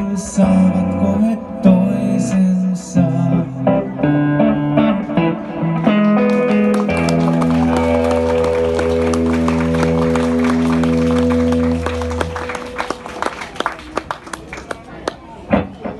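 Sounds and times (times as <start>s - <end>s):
electric guitar chord ringing: 3.2s - 13.4s
hand claps: 6.0s - 15.3s.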